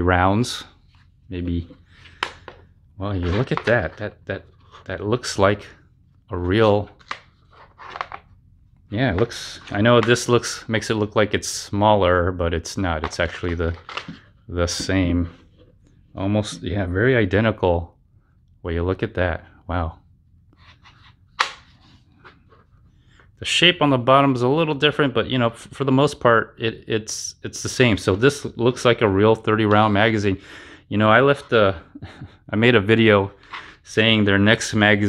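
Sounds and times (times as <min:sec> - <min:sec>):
plastic magazines scraping and clicking: 0:07.0 - 0:08.3, 0:13.0 - 0:14.3.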